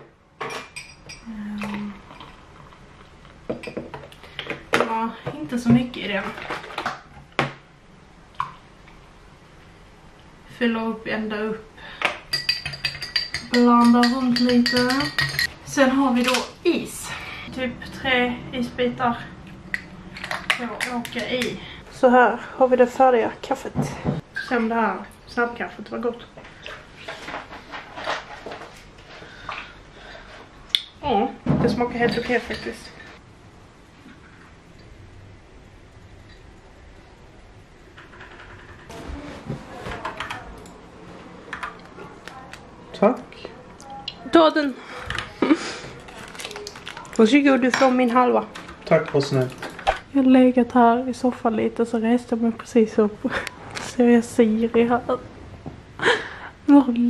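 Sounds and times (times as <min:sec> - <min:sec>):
metal spoon clinking on glass: 0:12.3 - 0:15.5.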